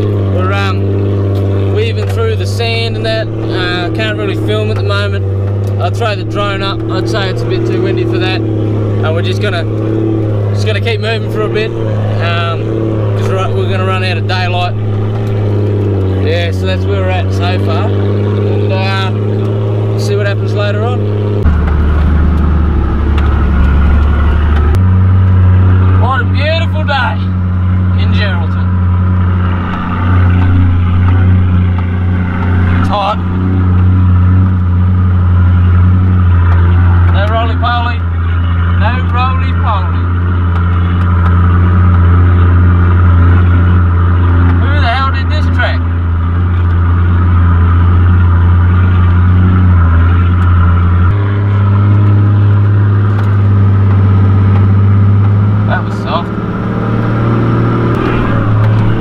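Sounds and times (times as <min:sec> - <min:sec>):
engine droning inside cabin: 0:00.0 - 0:59.0.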